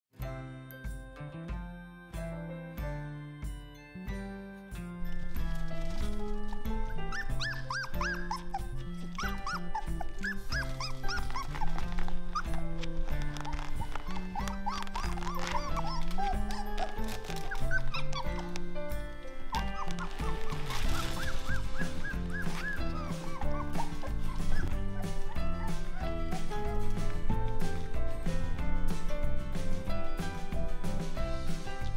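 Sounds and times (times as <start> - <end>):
background music: 0.2 - 31.9
puppies whining: 5.2 - 28.7.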